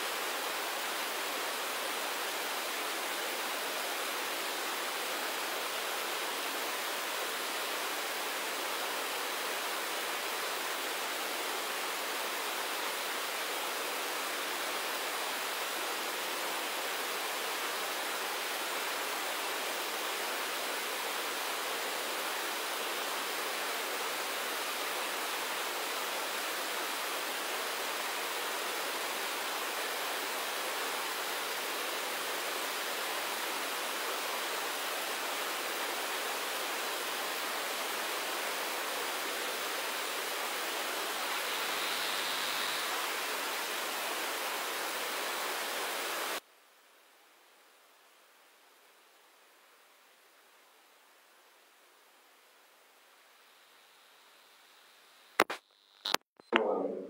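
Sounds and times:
steady hiss: 0.0s - 56.2s.

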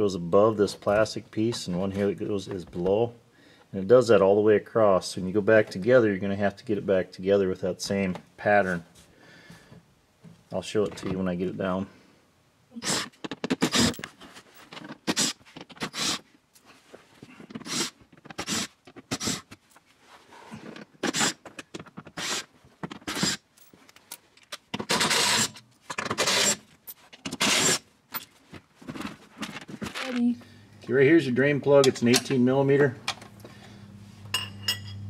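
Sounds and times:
cordless drill bursts: 12.8s - 13.9s, 15.1s - 16.2s, 17.6s - 19.4s, 22.2s - 22.5s, 24.9s - 25.5s, 26.1s - 26.6s, 27.4s - 27.8s.

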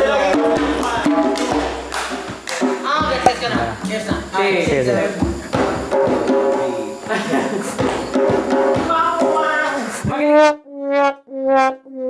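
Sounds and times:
djembe hand drumming: 0.0s - 10.2s
held brass-like note: 10.1s - 12.0s.

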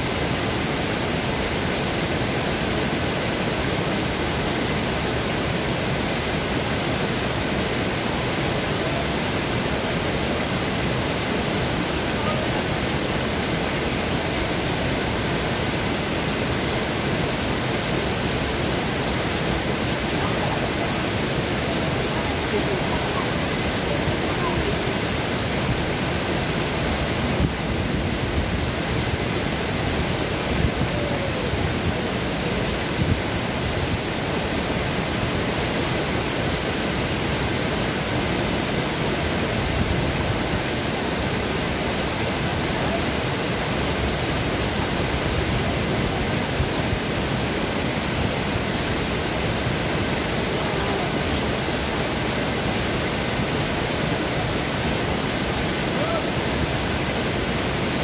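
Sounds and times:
waterfall rushing: 0.0s - 58.0s.

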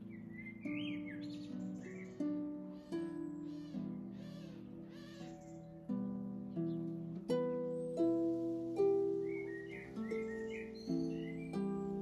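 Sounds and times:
bird calling: 0.0s - 5.8s, 8.8s - 12.0s
harp playing slow melody: 0.0s - 12.0s.

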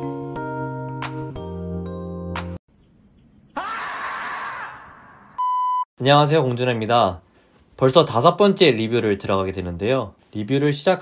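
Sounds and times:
marmot scream: 3.6s - 5.4s.

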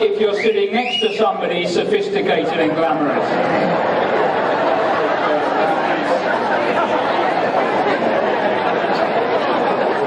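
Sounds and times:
crowd murmur: 0.0s - 10.0s.

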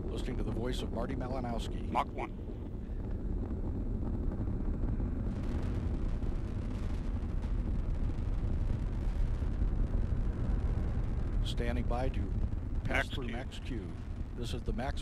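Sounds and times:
rocket engine roar: 0.0s - 15.0s.

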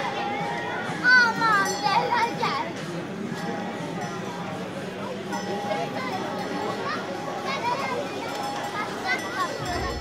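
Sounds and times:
chattering voices: 0.0s - 10.0s.

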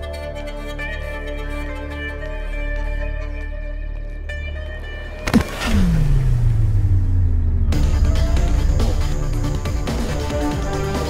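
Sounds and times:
deep sliding tone into low drone: 5.6s - 10.4s.

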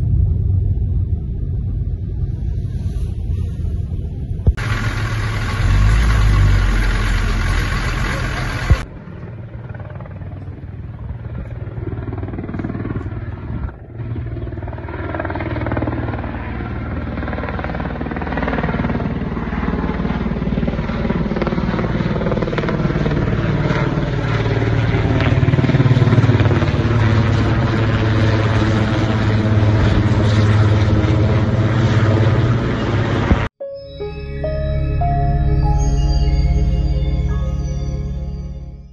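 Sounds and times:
truck engine rumbling: 0.0s - 9.4s, 31.2s - 38.9s
helicopter rotor and turbine: 0.0s - 33.5s.

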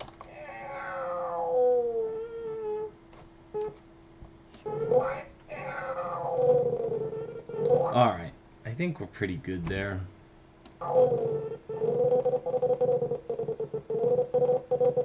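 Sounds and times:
faint steady hum: 0.0s - 15.0s
cartoon cat meowing: 0.3s - 2.9s, 4.7s - 7.9s.

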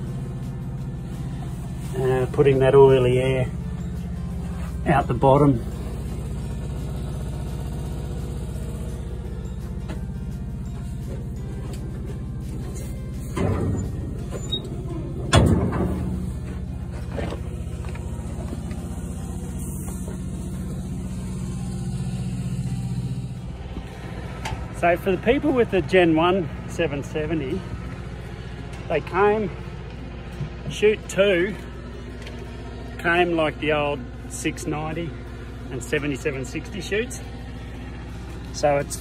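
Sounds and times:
diesel engine idling: 0.0s - 39.0s.

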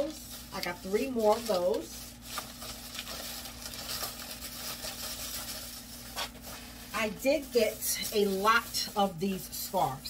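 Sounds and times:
air-conditioner hum: 0.0s - 10.0s
plastic packaging rustling: 0.0s - 10.0s.

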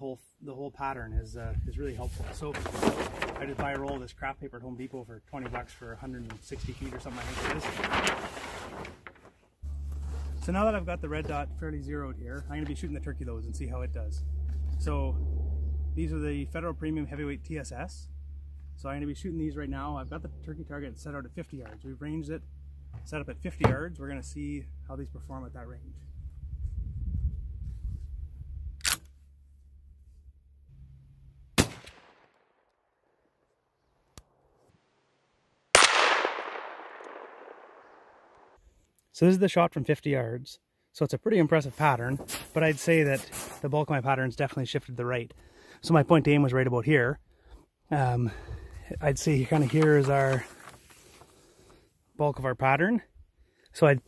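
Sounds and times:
paper rustling and crackling: 1.9s - 4.1s, 5.3s - 10.5s, 49.1s - 51.8s
steady low rumble: 5.5s - 31.6s
shotgun shot: 31.6s - 32.3s, 35.7s - 38.5s.

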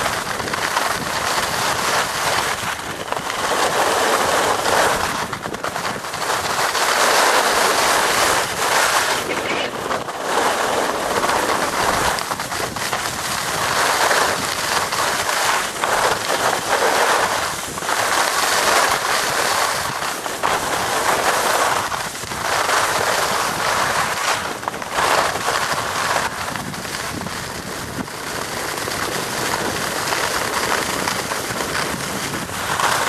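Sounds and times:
skis scraping over snow: 0.0s - 33.0s
wind on microphone: 0.0s - 33.0s.

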